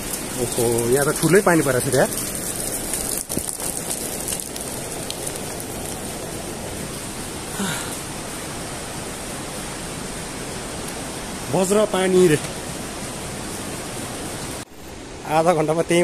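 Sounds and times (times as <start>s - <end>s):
steady rain falling: 0.0s - 16.0s.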